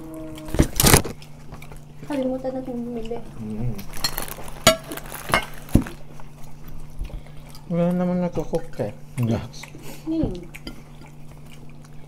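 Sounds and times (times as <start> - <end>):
cutlery and dishes clinking: 4.0 - 5.5.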